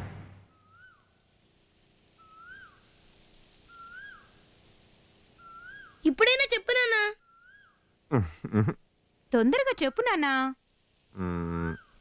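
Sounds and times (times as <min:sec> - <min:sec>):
bird whistling call: 0:02.2 - 0:02.8, 0:03.7 - 0:04.3, 0:05.4 - 0:06.0.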